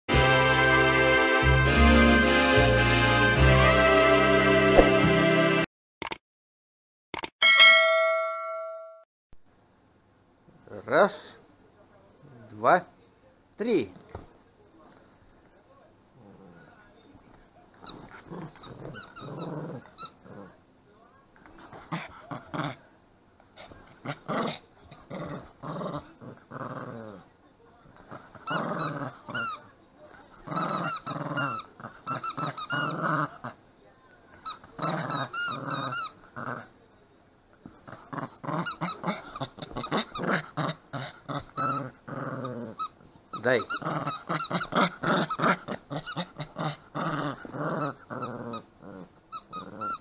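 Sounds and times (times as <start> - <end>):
dog growling: 16.1 - 16.9, 17.8 - 20.6, 21.5 - 22.8, 23.6 - 27.3, 28.0 - 29.6, 30.2 - 33.6, 34.4 - 36.8, 37.6 - 50.0
squeaky toy squeaking: 30.6 - 32.9, 34.4 - 36.2, 49.3 - 50.0.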